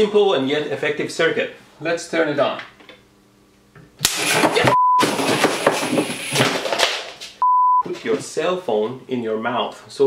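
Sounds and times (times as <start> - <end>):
censor bleep: 4.7 - 5.0, 7.4 - 7.8
circuit crackling and hissing: 5.5 - 7.2.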